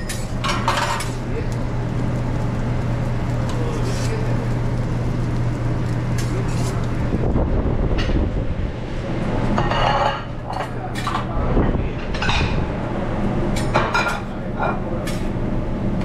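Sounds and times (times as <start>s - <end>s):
food sizzling on griddle: 0.0s - 7.3s
low kitchen hum: 0.0s - 16.0s.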